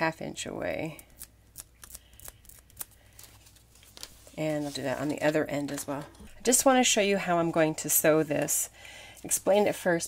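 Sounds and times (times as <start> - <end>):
soft fabric rustle: 3.2 - 6.0.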